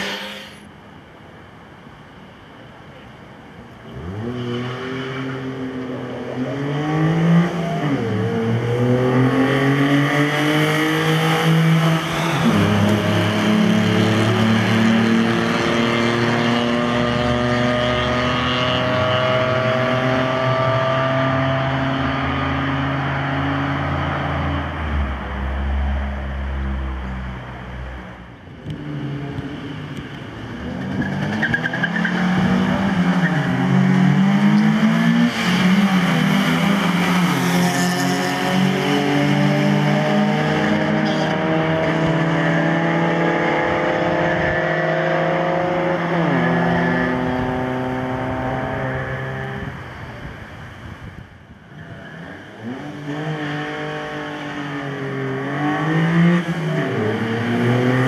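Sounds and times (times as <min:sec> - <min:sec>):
car engines revving hard: 0:00.0 - 0:00.7, 0:03.8 - 0:50.7, 0:51.7 - 0:58.0.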